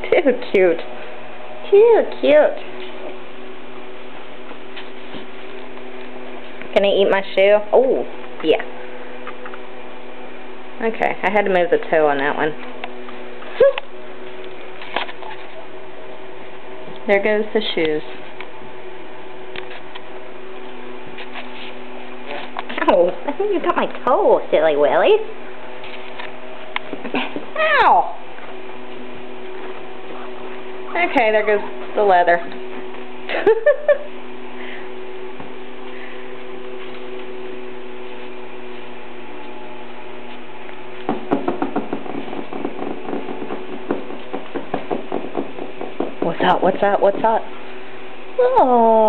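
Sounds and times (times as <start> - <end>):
steady background hum: 0.0 - 49.0.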